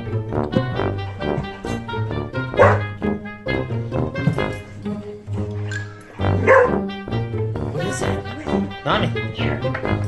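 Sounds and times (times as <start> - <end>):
background music: 0.0 - 10.0
dog barking: 2.5 - 2.9, 6.4 - 6.8.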